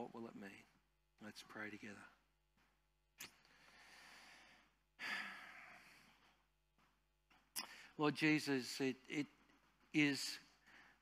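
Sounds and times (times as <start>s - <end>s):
man breathing in: 3.4s - 6.2s.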